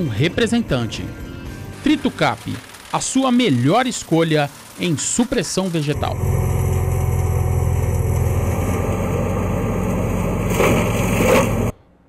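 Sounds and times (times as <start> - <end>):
mulcher shredding brush: 0.0 - 11.8
tractor engine running: 5.8 - 11.8.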